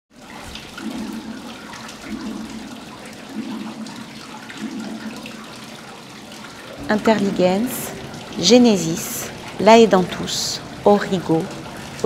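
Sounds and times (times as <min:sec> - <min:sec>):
water trickling: 0:00.1 - 0:12.0
small drips and clicks: 0:00.2 - 0:12.0.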